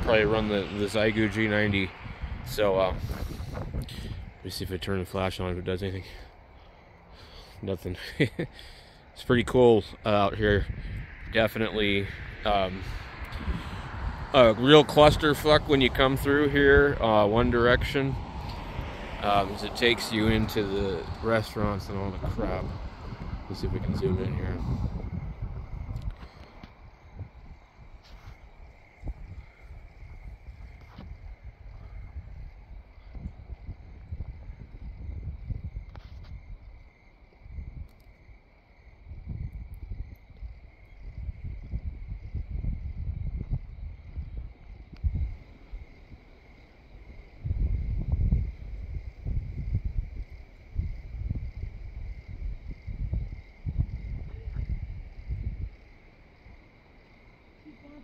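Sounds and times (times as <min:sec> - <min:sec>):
low rumbling on microphone: 0:00.0 - 0:04.8, 0:09.9 - 0:36.8, 0:39.0 - 0:46.2, 0:47.0 - 0:56.5
crickets chirping: 0:00.0 - 0:58.0.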